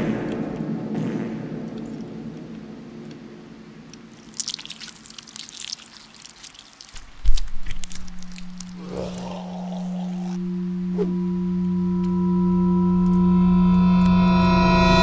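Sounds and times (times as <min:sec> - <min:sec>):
scattered crackles: 0:03.9 - 0:10.4
steady low drone: 0:07.6 - 0:15.0.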